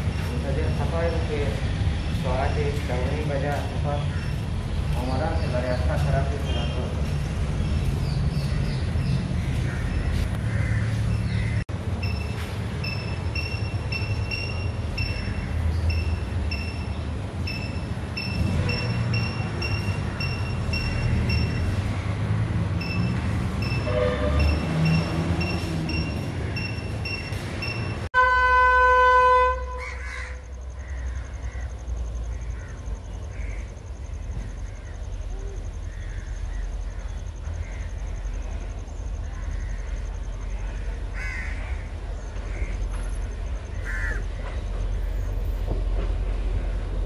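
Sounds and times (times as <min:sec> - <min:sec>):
crow cawing: 0:10.4 - 0:11.6, 0:29.8 - 0:31.7, 0:32.4 - 0:33.8, 0:35.9 - 0:38.0, 0:41.1 - 0:42.8, 0:43.7 - 0:44.4
short high beeps: 0:12.0 - 0:21.8, 0:22.8 - 0:28.1
train horn blast: 0:23.8 - 0:24.8, 0:28.2 - 0:30.0.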